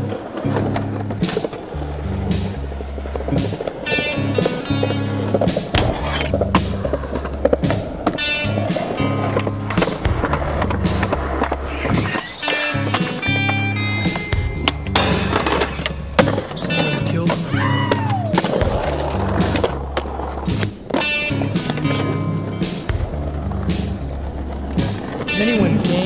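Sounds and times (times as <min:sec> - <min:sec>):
skateboard clacks: 0:00.0 - 0:26.0
skateboard wheels rolling on concrete: 0:00.0 - 0:26.0
music with stepping bass line: 0:00.1 - 0:12.2, 0:12.8 - 0:17.4, 0:18.1 - 0:26.0.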